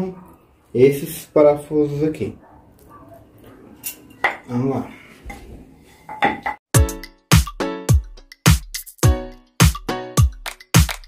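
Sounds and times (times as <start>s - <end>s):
music with heavy kick drum: 6.7s - 11.0s.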